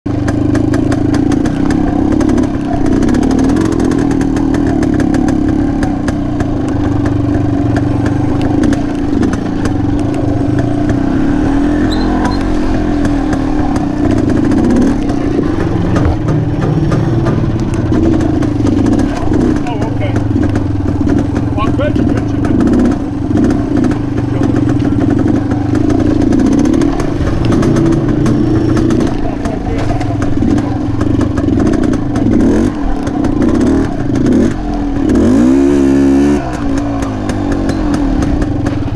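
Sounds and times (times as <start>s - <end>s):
motorbike engine at low revs: 0.0s - 38.9s.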